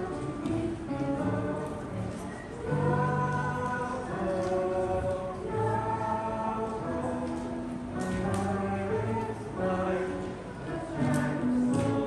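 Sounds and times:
choir singing held notes: 0.0s - 12.0s.

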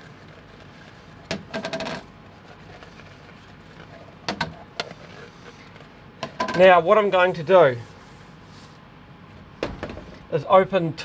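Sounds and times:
air purifier fan noise: 0.0s - 11.0s.

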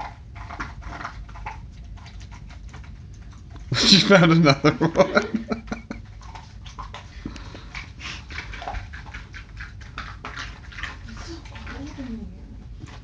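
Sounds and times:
dog crunching ice: 0.0s - 3.8s, 6.1s - 12.1s.

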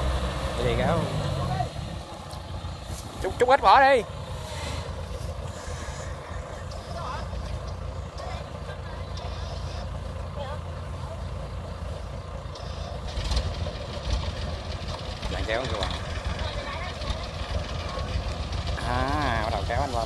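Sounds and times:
diesel engine rumbling: 0.0s - 20.0s.

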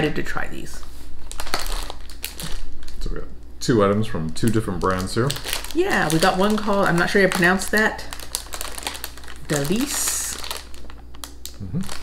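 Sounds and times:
plastic wrapping crinkling: 1.2s - 3.0s, 4.2s - 12.0s.

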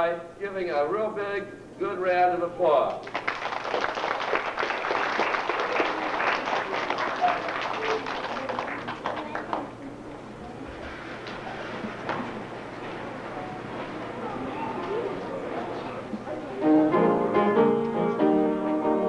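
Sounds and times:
children applauding: 3.0s - 9.8s
background chatter: 5.4s - 18.9s.

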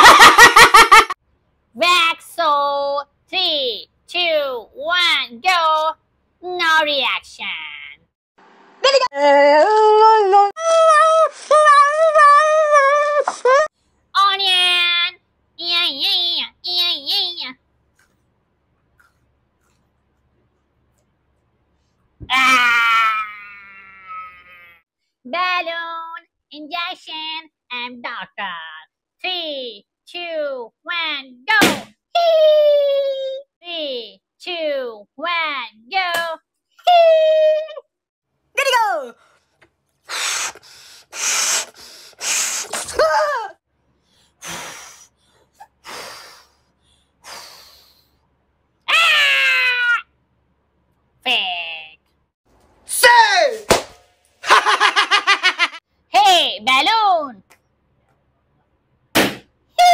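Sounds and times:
person wailing: 8.8s - 13.7s
balloon squeal: 40.1s - 43.0s
breath blown into balloon: 40.1s - 43.0s, 44.2s - 48.2s.

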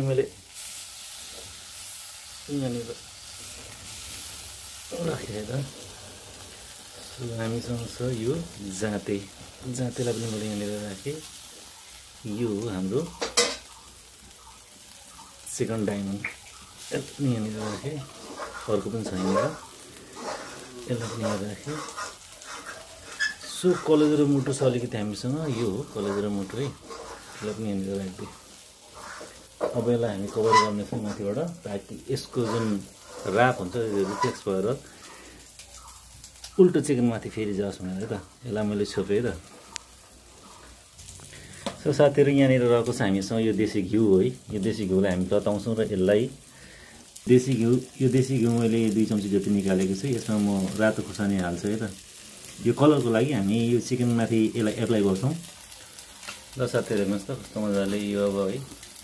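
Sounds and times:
chicken sizzling on a grill: 0.0s - 59.0s
person talking: 15.5s - 19.6s, 20.8s - 22.0s, 23.4s - 26.8s, 27.4s - 28.4s, 29.6s - 34.8s.

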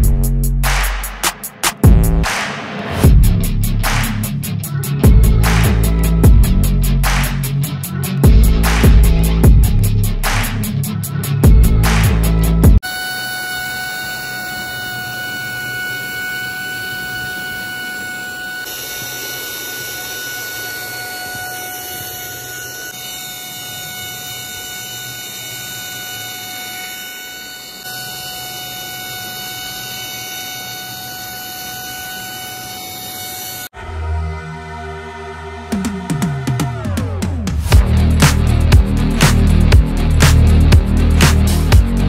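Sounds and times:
small motor whine: 11.1s - 40.2s.

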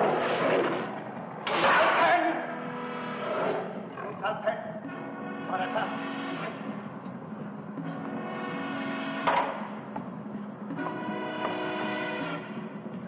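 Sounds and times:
orchestral music with timpani: 1.9s - 7.0s.

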